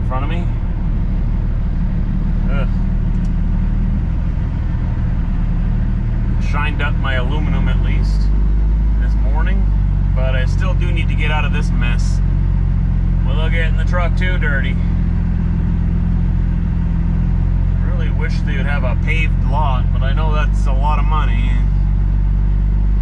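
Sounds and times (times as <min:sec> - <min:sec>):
man talking: 0:00.0 - 0:00.6, 0:02.4 - 0:02.8, 0:06.4 - 0:08.3, 0:09.0 - 0:12.2, 0:13.2 - 0:14.9, 0:17.8 - 0:21.7
diesel truck engine drone: 0:00.0 - 0:23.0.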